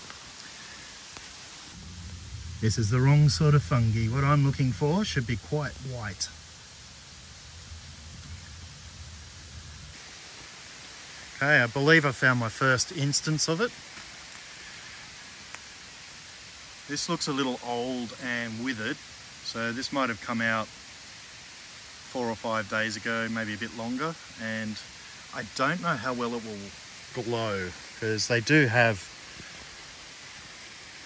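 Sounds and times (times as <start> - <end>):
waterfall rushing: 0.0 - 21.0
person speaking: 2.6 - 6.4.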